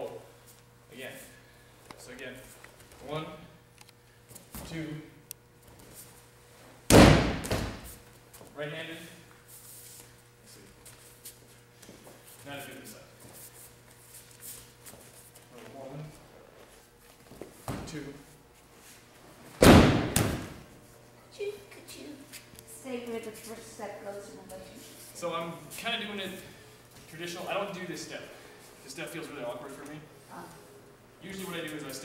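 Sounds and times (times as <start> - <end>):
body slapping onto mat: 6.9 - 8.0, 19.5 - 20.7.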